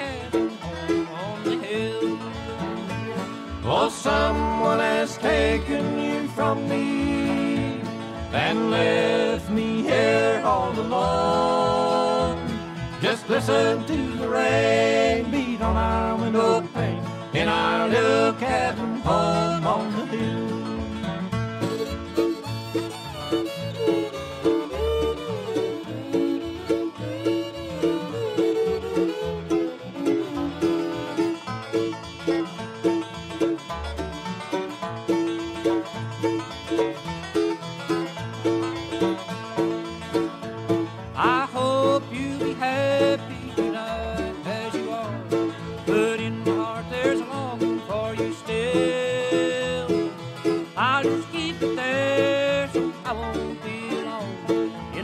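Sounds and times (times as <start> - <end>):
banjo fast picked rolls: 0.0 - 55.0
guitar: 0.0 - 55.0.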